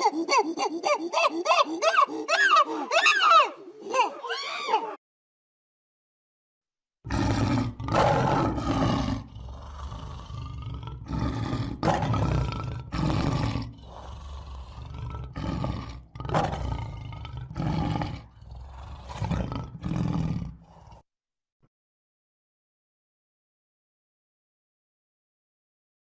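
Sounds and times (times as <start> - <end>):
lion roaring: 7.1 - 21.0.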